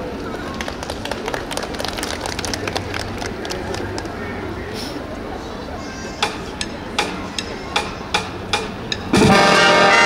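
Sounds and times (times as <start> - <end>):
brass band chords: 9.2 - 10.0.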